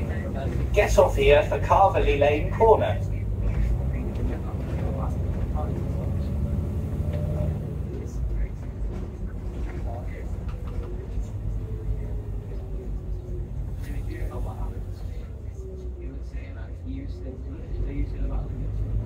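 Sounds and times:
bus engine and road rumble: 0:00.0 - 0:19.0.

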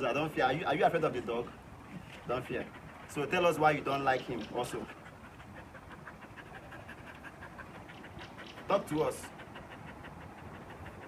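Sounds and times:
dog panting: 0:00.2 - 0:11.0.

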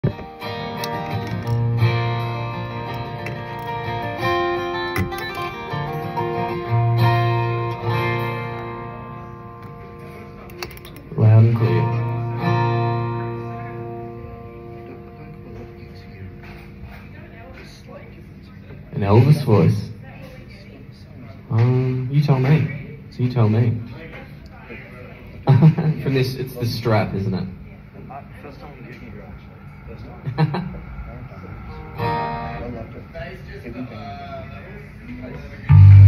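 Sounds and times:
guitar chords: 0:00.0 - 0:16.2, 0:35.6 - 0:36.0
bass line: 0:35.7 - 0:36.0.

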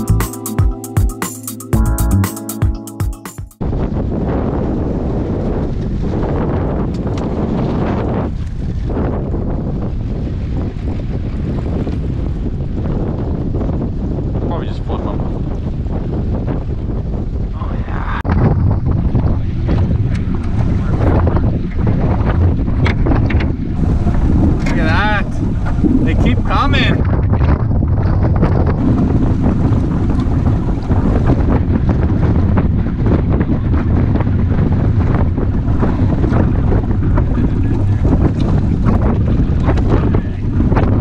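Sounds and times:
wind buffeting microphone: 0:03.6 - 0:41.0.

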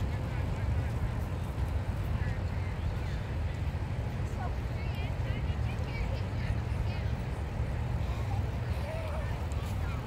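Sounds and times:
faint distant voices: 0:00.0 - 0:10.0.

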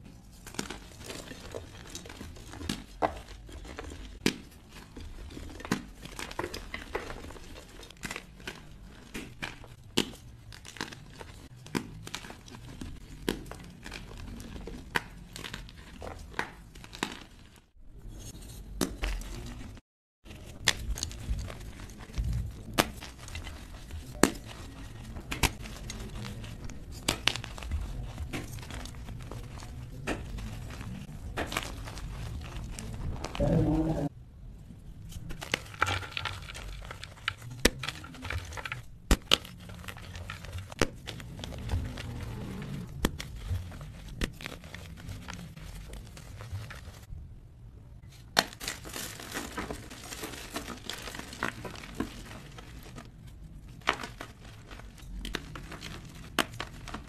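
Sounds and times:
chalk pieces cracking: 0:00.0 - 0:34.1, 0:35.0 - 0:47.1, 0:48.1 - 0:57.0.

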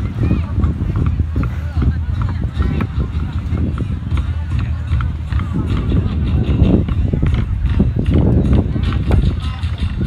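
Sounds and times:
wooden barrel drums beaten: 0:00.0 - 0:10.0.

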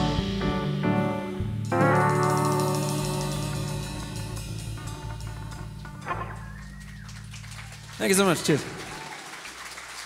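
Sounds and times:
band chord ringing out: 0:00.0 - 0:06.7.

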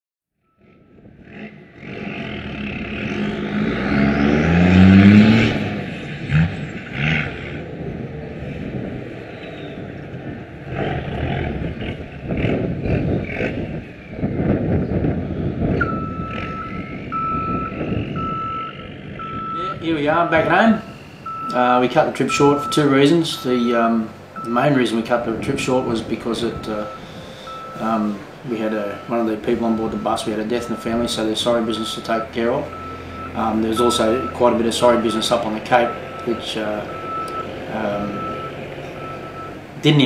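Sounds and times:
reversing beeper beeps: 0:00.5 - 0:00.9, 0:15.8 - 0:39.6
vehicle engine revving: 0:00.5 - 0:40.0.

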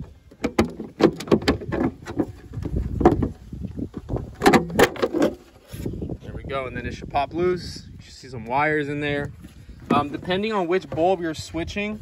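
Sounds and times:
plastic housing knocking and creaking: 0:00.0 - 0:05.5.

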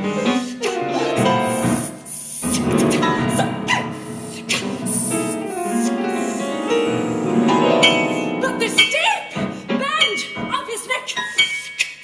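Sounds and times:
soprano singing: 0:00.0 - 0:11.4
grand piano: 0:00.0 - 0:11.7
hissing noise: 0:01.3 - 0:08.1.

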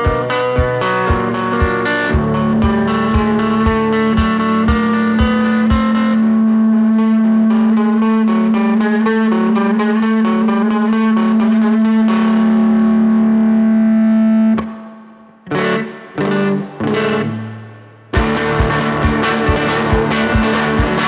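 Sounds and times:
electric guitar playing: 0:00.0 - 0:21.0.

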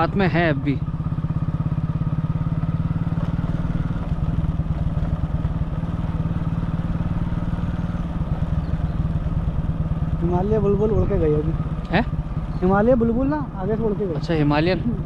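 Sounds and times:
motorcycle engine running: 0:00.0 - 0:15.0.

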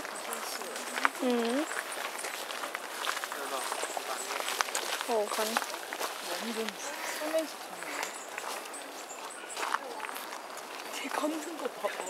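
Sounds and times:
faint voices: 0:00.0 - 0:12.0
footsteps through long grass: 0:00.0 - 0:12.0.

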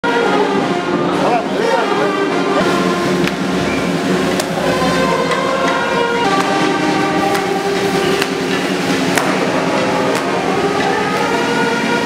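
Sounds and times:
brass band music: 0:00.0 - 0:12.0
drum beats: 0:01.1 - 0:11.4.

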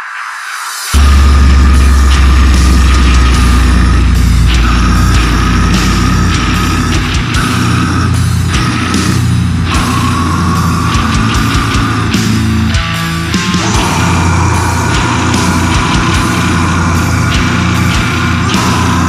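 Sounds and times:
heavy metal band playing live: 0:00.9 - 0:19.0.

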